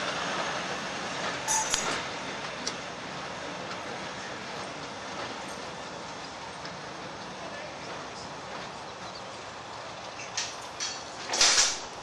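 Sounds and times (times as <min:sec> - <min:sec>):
train wheels on rails: 0:00.0 - 0:12.0.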